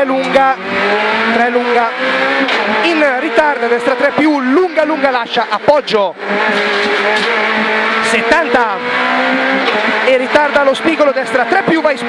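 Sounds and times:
rally car engine at high revs: 0.0 - 12.0.

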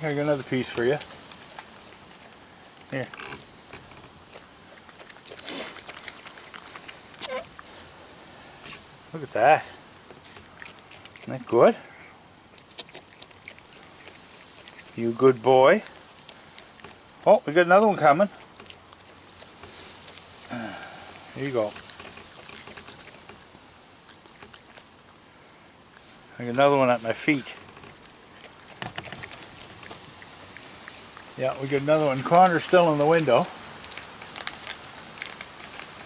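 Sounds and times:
raccoon biting food: 0.0 - 25.2, 25.8 - 36.0.

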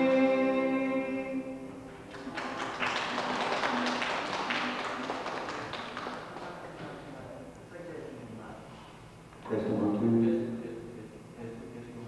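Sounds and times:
audience applauding: 2.1 - 7.0.

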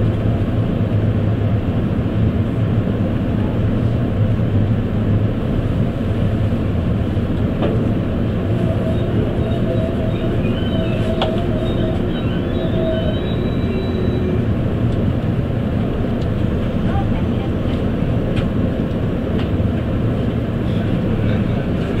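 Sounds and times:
train running low rumble: 0.0 - 22.0
faint high squealing: 8.5 - 14.4.

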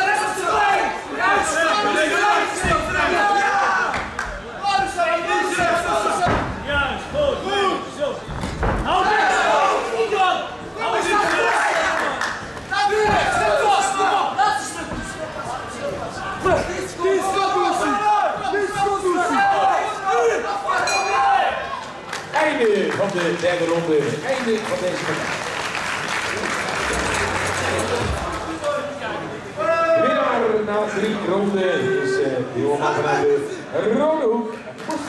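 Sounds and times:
loud shouting voices: 0.0 - 4.0, 4.6 - 8.2, 8.8 - 22.0
boxing ring bell: 20.9 - 21.3.

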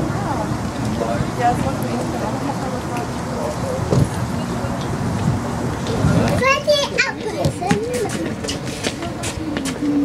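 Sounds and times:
voices murmuring: 0.0 - 10.0.

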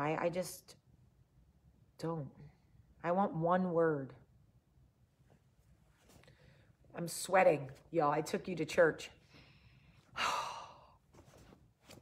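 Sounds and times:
woman sighing: 10.1 - 11.0.

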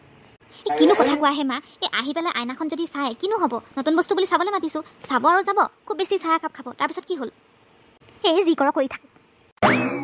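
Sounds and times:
cartoon character speaking: 0.7 - 1.5
cartoon rising glide effect: 9.6 - 10.0.

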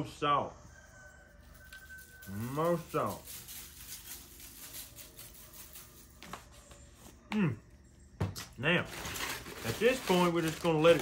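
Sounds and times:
salt shaker rattling: 1.5 - 6.3.

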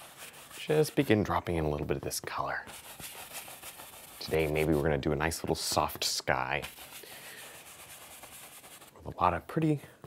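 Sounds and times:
paintbrush rubbing on canvas: 0.0 - 1.2, 2.6 - 4.9, 6.6 - 9.0.

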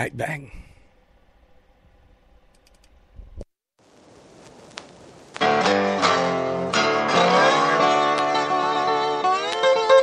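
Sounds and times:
faint clicks: 2.5 - 3.0.

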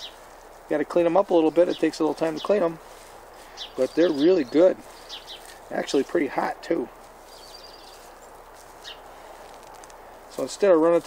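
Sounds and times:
bird chirping rapidly: 0.0 - 0.2, 1.4 - 9.2
faint outdoor background: 0.0 - 11.0.

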